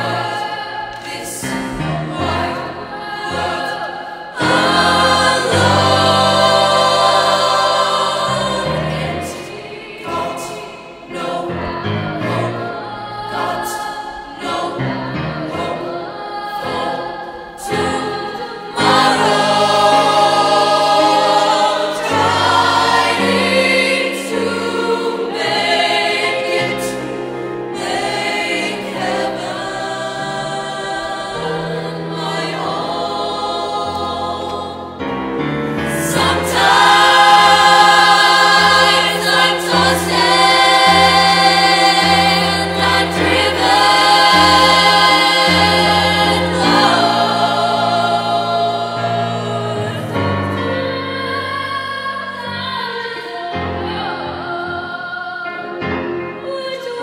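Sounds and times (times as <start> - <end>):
choir of young voices singing: 0.0 - 57.0.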